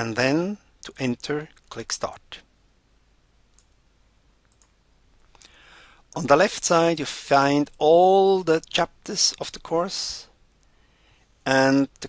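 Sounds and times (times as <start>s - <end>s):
faint computer mouse clicks: 3.5s - 3.8s, 4.4s - 4.8s.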